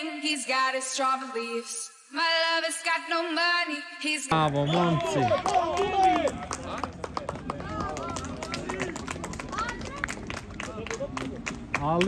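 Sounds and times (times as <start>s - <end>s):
players shouting: 4.5s - 10.1s.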